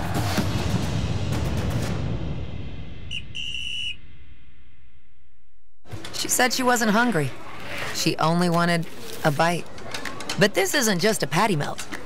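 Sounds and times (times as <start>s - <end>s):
whistle blasts: 3.1s - 4.2s.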